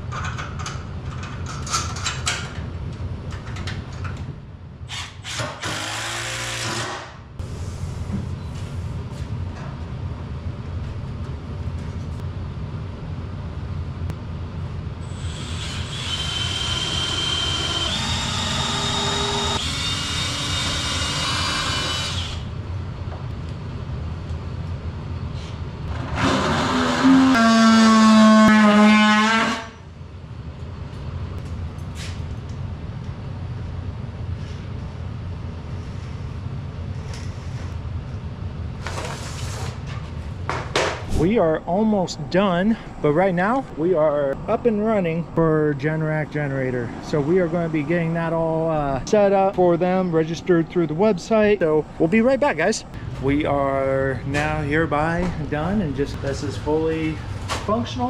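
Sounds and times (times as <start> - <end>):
cordless drill running: 15.1 - 22.5
low hum: 39.9 - 58.0.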